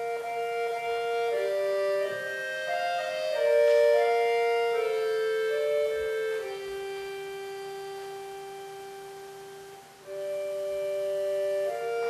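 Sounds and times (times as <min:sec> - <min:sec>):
accordion holding long note: 0:00.0 - 0:12.0.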